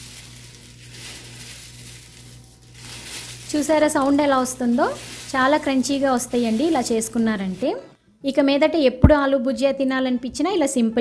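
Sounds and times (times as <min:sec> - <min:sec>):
crispy snack rustling and crackling: 0:00.0 - 0:07.8.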